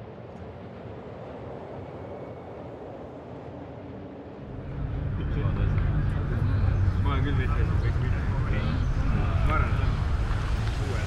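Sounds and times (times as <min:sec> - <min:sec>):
outdoor hiss and rumble: 0:00.0 - 0:11.0
deep rumble: 0:04.4 - 0:11.0.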